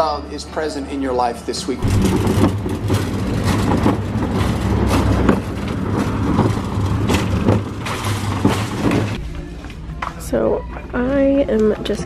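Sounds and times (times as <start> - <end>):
shopping cart wheels rumbling: 1.5 - 9.6.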